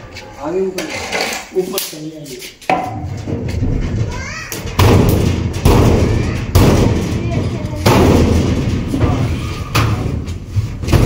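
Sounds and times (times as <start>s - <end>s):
heavy sheet-metal thuds: 2.7s - 11.0s.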